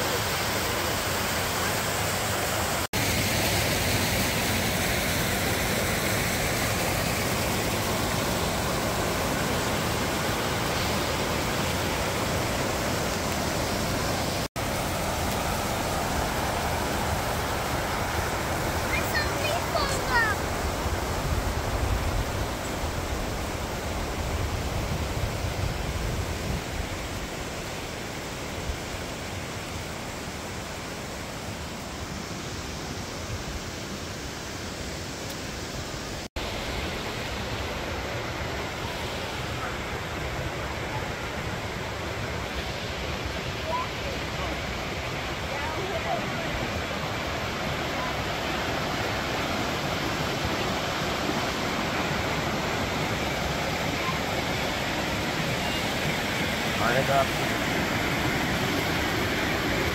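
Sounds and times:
creek water rushing over rocks: 0:00.0 - 0:59.9.

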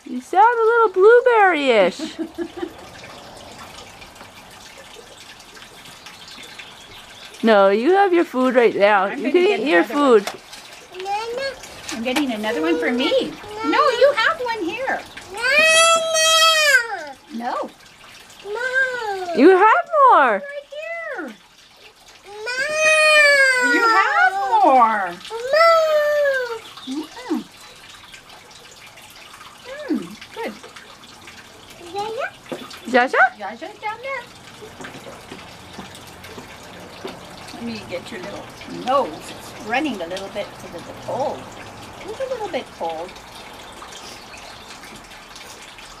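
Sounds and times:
faint water drips: 0:00.0 - 0:46.0
trickle of running water: 0:00.0 - 0:46.0
toddler whining: 0:11.0 - 0:11.6, 0:12.4 - 0:14.0, 0:15.3 - 0:17.2, 0:18.4 - 0:19.4, 0:22.3 - 0:24.6, 0:25.3 - 0:26.6
toddler squeaks: 0:15.3 - 0:17.2, 0:25.3 - 0:26.6.

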